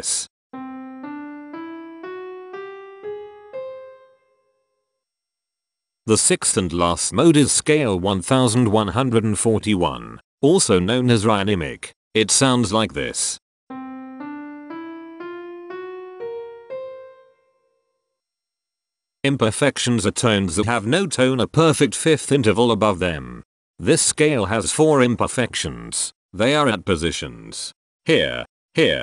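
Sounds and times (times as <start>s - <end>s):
piano notes ascending: 0.5s - 4.7s, 13.7s - 17.9s.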